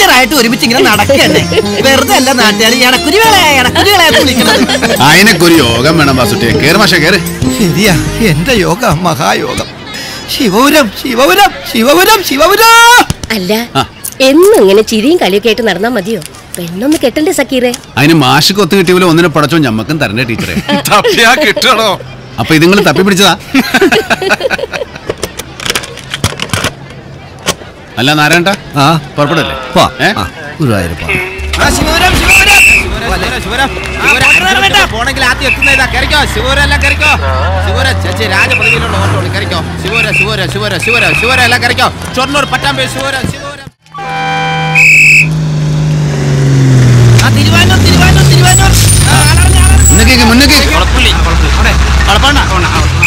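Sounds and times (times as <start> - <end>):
bus engine humming: 0.0 - 17.2, 17.8 - 53.0
bus horn blast: 31.0 - 34.8, 43.9 - 45.7
bus engine slowing down: 44.0 - 53.0.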